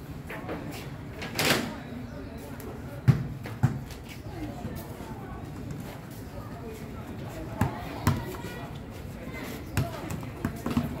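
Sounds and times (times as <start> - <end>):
ball bouncing on hard paving: 3.0 - 3.8, 7.5 - 8.4, 9.7 - 11.0
children's voices: 7.6 - 10.1.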